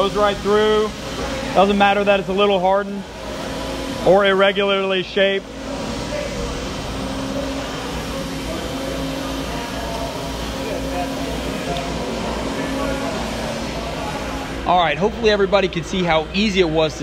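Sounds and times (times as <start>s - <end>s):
tapping arm mechanical hum: 5.5s - 14.7s.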